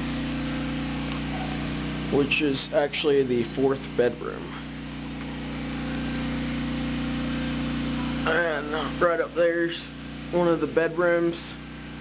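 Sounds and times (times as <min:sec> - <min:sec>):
generator engine humming: 0:00.0 - 0:12.0.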